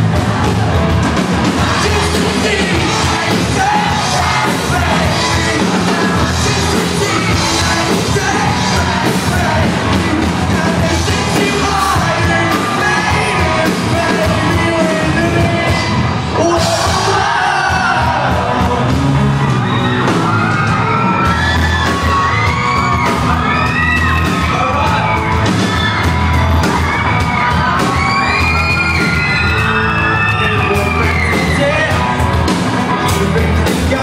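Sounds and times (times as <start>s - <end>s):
crowd screaming and whooping: 0.0s - 34.0s
live rock band playing: 0.0s - 34.0s.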